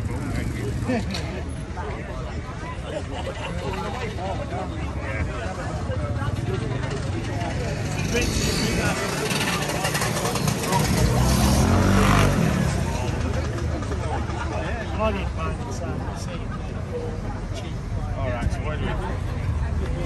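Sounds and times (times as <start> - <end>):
people talking: 0.0 - 20.0
vehicle engine passing by: 6.7 - 14.5.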